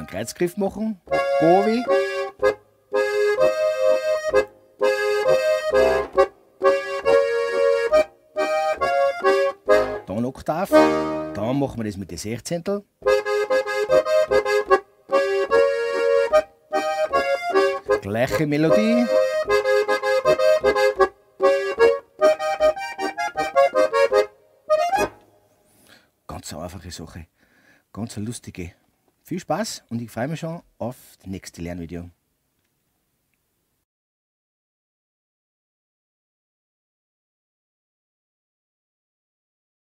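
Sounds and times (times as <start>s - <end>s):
button accordion folk melody: 0.0s - 11.7s, 13.0s - 25.6s.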